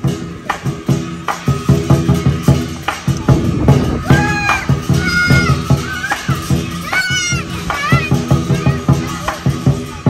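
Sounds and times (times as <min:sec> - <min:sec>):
big drum beaten quickly: 0:00.0 - 0:10.0
children shouting and squealing: 0:03.1 - 0:10.0.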